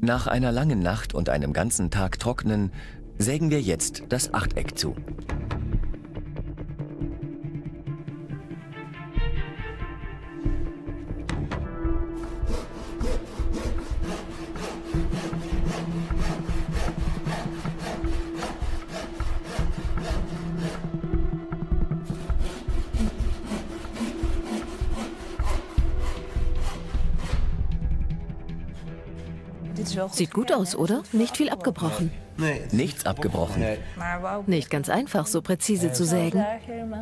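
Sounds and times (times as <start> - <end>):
hand saw cutting wood: 12.2 - 20.9, 22.1 - 27.6.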